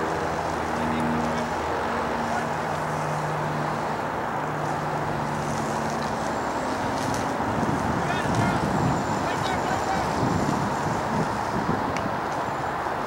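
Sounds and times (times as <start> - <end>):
outdoor rumble and hiss: 0.0 - 13.0.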